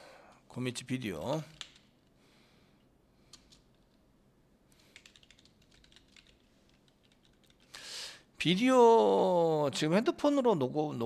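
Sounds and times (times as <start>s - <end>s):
typing on keyboard: 1.5s - 1.9s, 4.8s - 7.7s.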